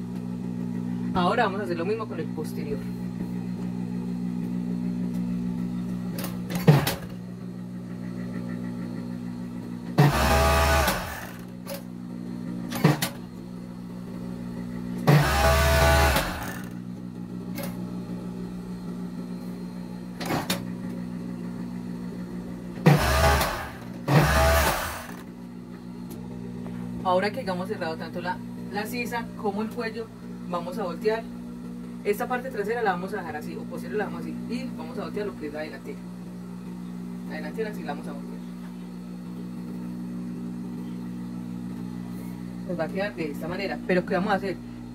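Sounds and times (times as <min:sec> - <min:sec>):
machine stitching: 0:10.0 - 0:11.5, 0:15.0 - 0:16.8, 0:22.8 - 0:25.2
sewing machine motor humming: 0:10.0 - 0:11.6, 0:15.0 - 0:16.8, 0:22.8 - 0:25.4.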